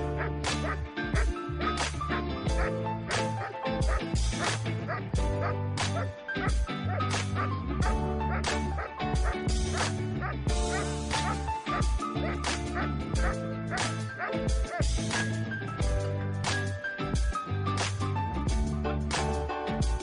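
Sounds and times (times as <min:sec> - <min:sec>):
background music with steady beat: 0:00.0 - 0:20.0
dog barking: 0:04.9 - 0:14.8.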